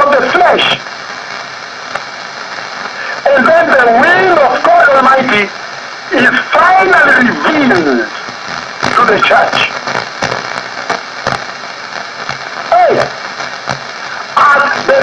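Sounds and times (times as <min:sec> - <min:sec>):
person speaking over radio: 0:00.0 - 0:00.8, 0:03.0 - 0:05.5, 0:06.1 - 0:09.9, 0:12.7 - 0:13.2, 0:14.1 - 0:15.0
steady radio hiss: 0:00.0 - 0:15.0.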